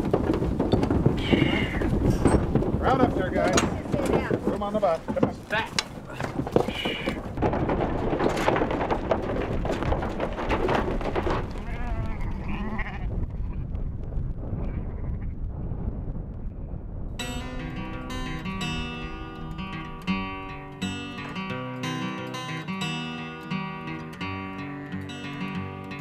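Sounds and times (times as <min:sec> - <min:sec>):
sheep bleating: 0:01.2 - 0:02.0, 0:11.6 - 0:13.1
acoustic guitar music: 0:17.2 - 0:26.0.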